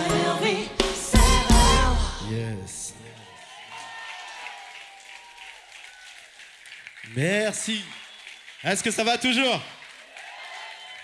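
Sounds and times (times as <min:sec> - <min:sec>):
audience applauding: 0:03.2 - 0:11.0.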